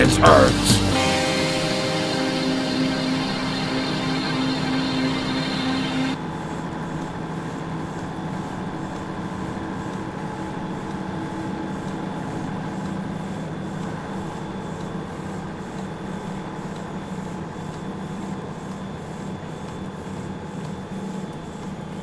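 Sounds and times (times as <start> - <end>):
machine-like drone with held tones: 0.0 - 6.2.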